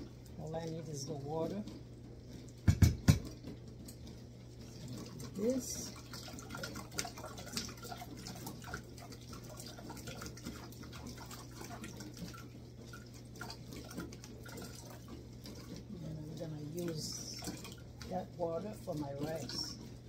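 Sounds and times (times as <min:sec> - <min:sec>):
juice dripping into metal pot: 0:00.0 - 0:20.0.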